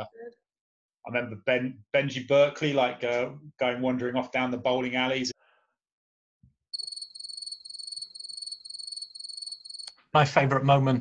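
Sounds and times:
cricket chirping: 0:06.8 - 0:10.0.

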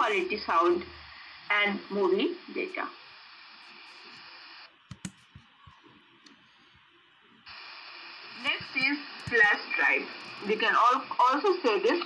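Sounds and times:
faint steady hiss: 0:00.0 - 0:12.0
laptop clicks: 0:04.9 - 0:05.5.

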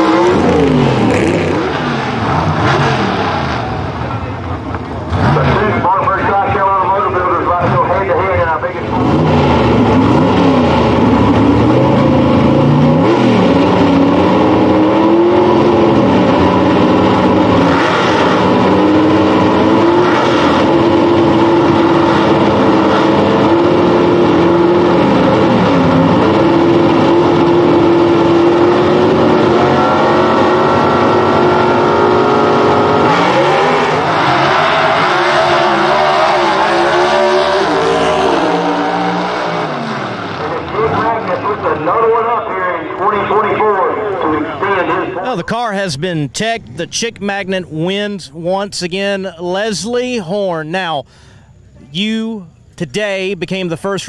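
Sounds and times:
drag cars accelerating through gears: 0:00.0 - 0:45.2
drag car engines revving: 0:00.0 - 0:54.0.

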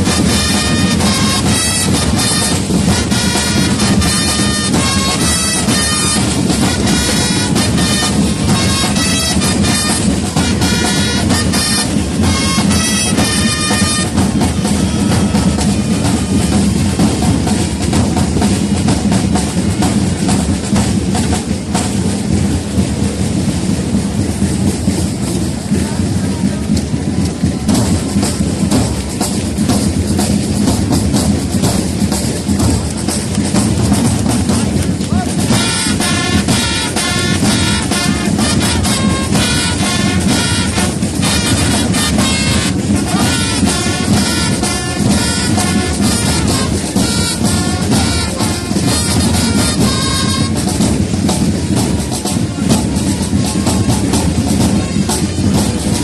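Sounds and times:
snare and bass drums: 0:00.0 - 0:56.0
wind instruments sustained notes: 0:00.0 - 0:56.0.

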